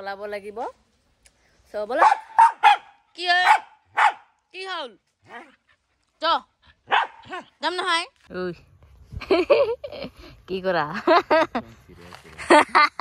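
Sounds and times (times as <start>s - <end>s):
small dog barking and yelping: 2.0s - 4.4s, 6.8s - 7.6s.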